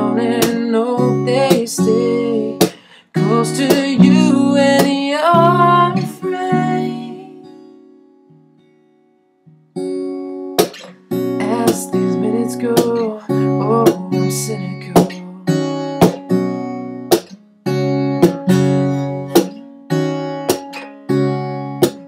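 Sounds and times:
acoustic guitar strumming: 0.0 - 22.0.

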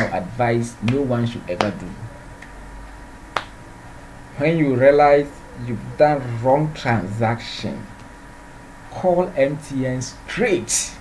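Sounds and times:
low room hum: 0.0 - 11.0.

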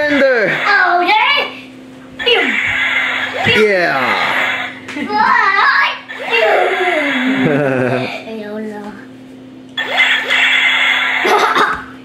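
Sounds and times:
toy gun electronic buzz: 0.1 - 1.2, 2.2 - 4.8, 5.7 - 8.2, 9.8 - 11.8.

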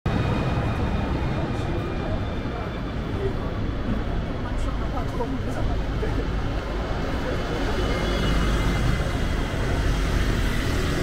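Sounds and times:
bus engine rumble: 0.1 - 11.0
passers-by talking: 0.7 - 9.8.

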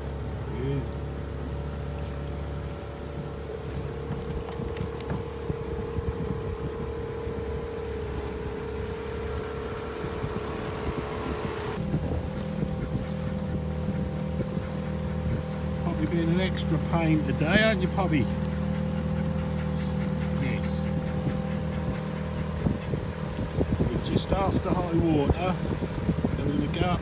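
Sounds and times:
small outboard motor running: 0.0 - 27.0
wind buffeting microphone: 1.1 - 27.0.

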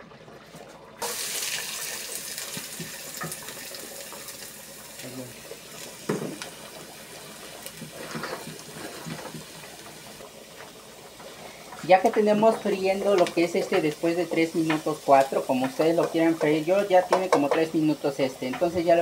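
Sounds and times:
onion sizzling in hot oil: 1.0 - 19.0.

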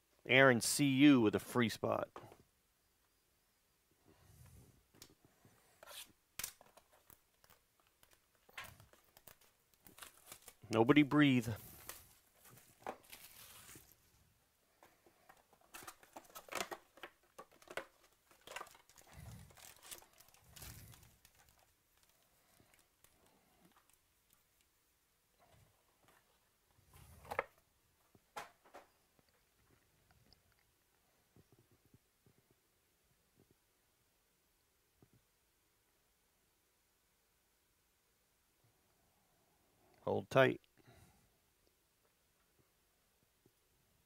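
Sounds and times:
foil card packs crinkling: 5.6 - 14.1, 14.8 - 24.0
plastic shrink wrap crackling: 5.8 - 10.8, 11.5 - 14.1, 15.2 - 24.4.

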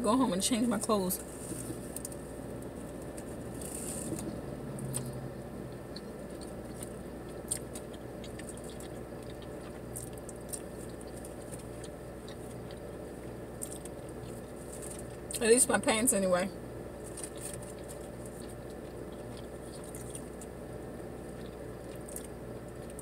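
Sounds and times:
steady low hum: 0.0 - 23.0
person chewing food: 1.6 - 15.4, 16.9 - 23.0.

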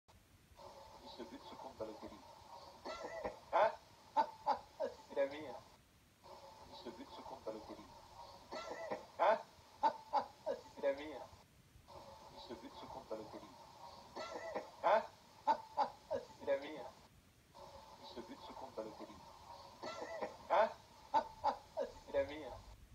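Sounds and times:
men laughing through tv speaker: 2.8 - 5.2, 8.5 - 10.8, 14.1 - 16.4, 19.8 - 22.3.

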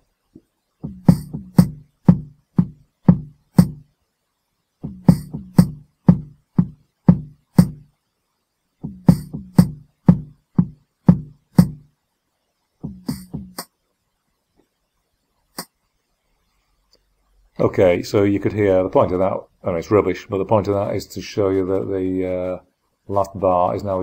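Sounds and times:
programmed drum beat: 0.8 - 3.9, 4.8 - 7.9, 8.8 - 11.9, 12.8 - 13.7.

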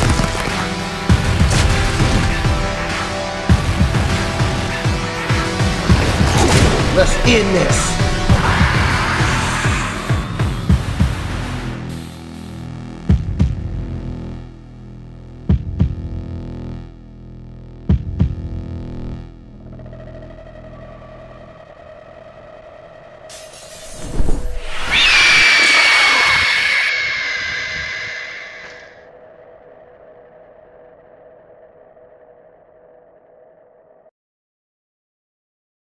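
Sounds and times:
sustained dark drone: 0.0 - 12.0, 18.6 - 34.1
woman shrieking: 24.8 - 28.9.

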